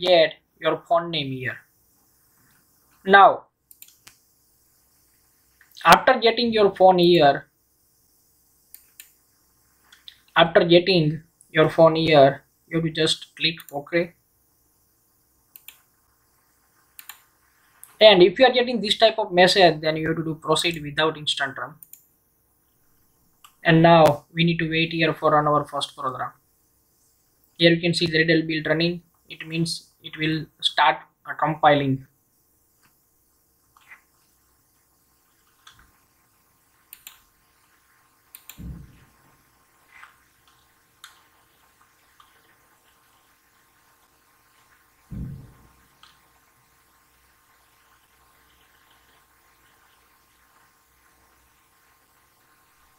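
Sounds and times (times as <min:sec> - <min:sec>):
low electrical hum: 0:00.0 - 0:52.9
faint mouse clicks: 0:03.7 - 0:04.3, 0:08.7 - 0:09.2, 0:15.5 - 0:15.9, 0:17.0 - 0:18.0, 0:21.8 - 0:22.1, 0:23.4 - 0:24.2, 0:36.9 - 0:37.3, 0:38.3 - 0:38.9, 0:40.0 - 0:41.3
dull thump: 0:38.6 - 0:39.0, 0:45.1 - 0:45.8.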